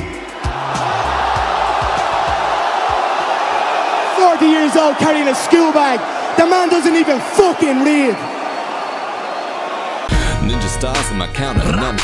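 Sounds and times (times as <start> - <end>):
hip-hop beat: 0.0 - 3.1, 10.1 - 12.0
crowd cheering: 0.0 - 10.2.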